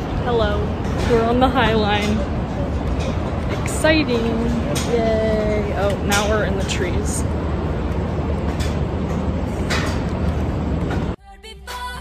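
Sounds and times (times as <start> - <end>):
outdoor noise with low rumble: 0.0 - 12.0.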